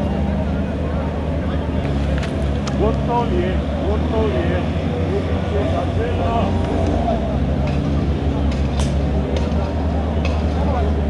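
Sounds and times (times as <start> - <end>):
people talking and calling: 0.0 - 11.0.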